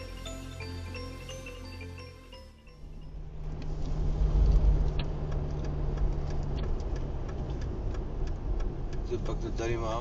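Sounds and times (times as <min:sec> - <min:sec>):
car engine and road noise: 0:00.0 - 0:10.0
turn signal ticking: 0:02.8 - 0:10.0.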